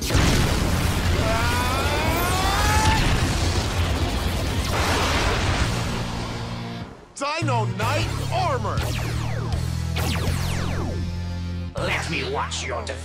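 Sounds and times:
music: 3.8s - 13.0s.

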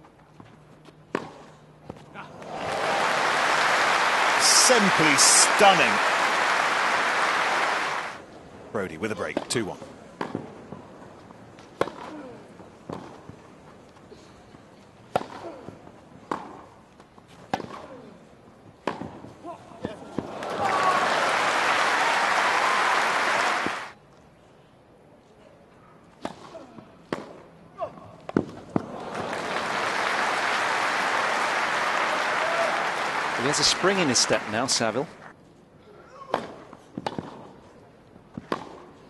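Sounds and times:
crowd applause: 2.4s - 8.2s, 20.2s - 23.9s, 28.8s - 35.3s.

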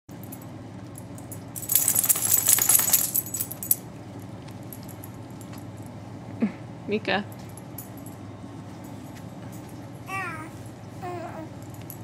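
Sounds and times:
dog collar tags jingling: 1.2s - 3.8s.

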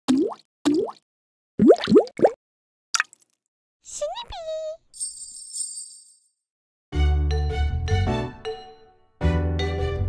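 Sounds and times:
cartoon pop bloops: 0.1s - 1.0s, 1.6s - 2.4s.

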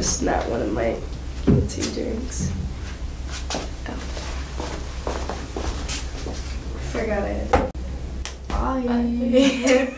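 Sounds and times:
steady low hum: 0.0s - 9.9s.

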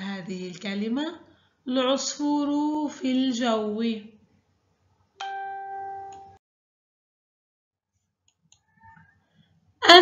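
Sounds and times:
electronic chime ding: 5.2s - 6.4s.

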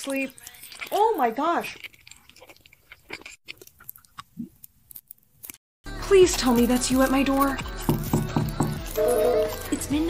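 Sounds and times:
chewing gummy candy: 0.0s - 10.0s.

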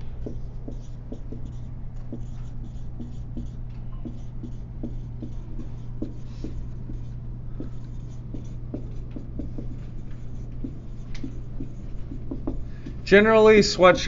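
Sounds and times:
pen writing by hand: 0.0s - 13.0s
low room hum: 0.0s - 14.0s.

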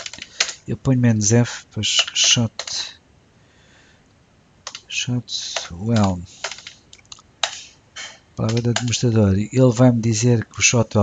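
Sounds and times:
typing on computer keyboard: 0.0s - 0.6s, 2.0s - 2.8s, 4.6s - 4.9s, 5.6s - 7.6s, 8.4s - 9.0s.

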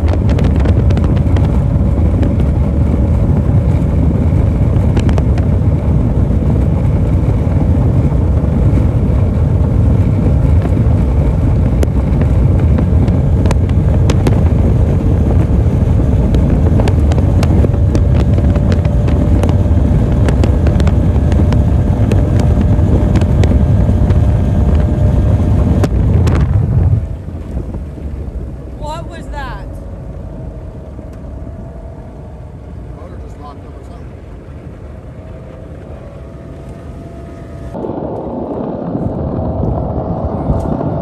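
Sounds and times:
outboard boat engine running flat out: 0.0s - 28.9s, 29.7s - 41.0s
wind buffeting microphone: 0.0s - 41.0s.

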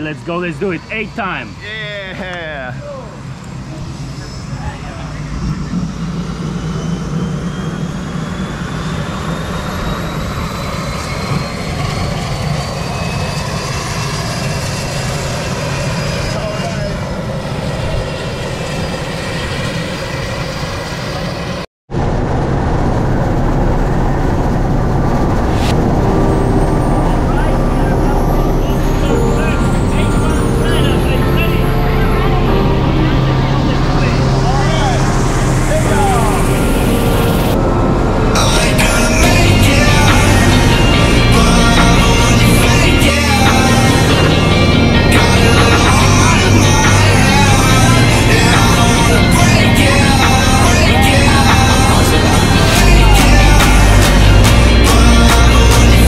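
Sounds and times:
high engine whine: 0.0s - 56.0s
light aircraft engines droning: 0.0s - 56.0s.

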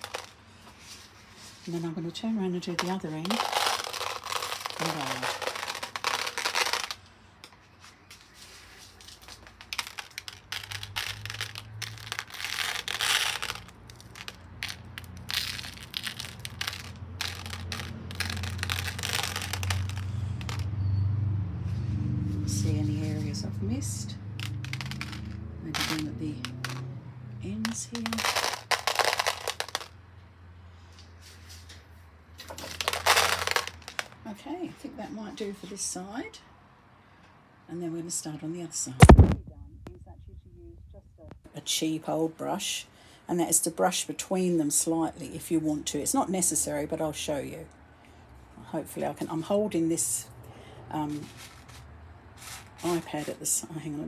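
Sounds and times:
container crinkling: 0.0s - 2.0s, 2.6s - 20.7s, 24.3s - 26.9s, 27.6s - 30.0s, 32.4s - 34.2s, 39.0s - 39.4s, 51.0s - 54.0s
glass pieces scattering: 32.5s - 34.2s
low hum: 39.0s - 41.5s.

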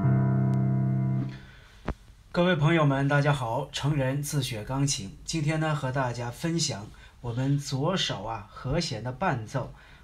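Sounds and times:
low piano chord: 0.0s - 1.5s.

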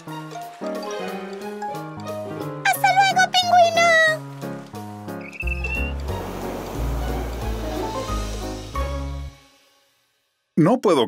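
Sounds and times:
cartoon background music: 0.0s - 9.7s
high rising squeak: 5.2s - 8.2s.

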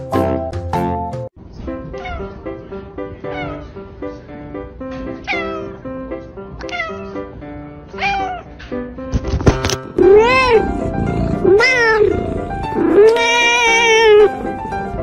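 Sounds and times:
background music: 0.0s - 15.0s
cat meowing: 2.0s - 2.4s, 3.3s - 3.8s, 5.2s - 5.8s, 6.6s - 7.3s, 7.9s - 8.6s, 10.0s - 15.0s.

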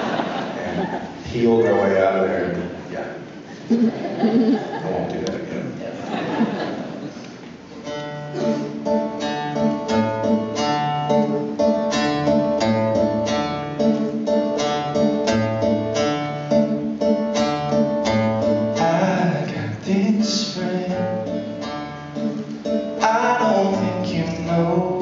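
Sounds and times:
acoustic guitar picking: 7.7s - 25.0s.

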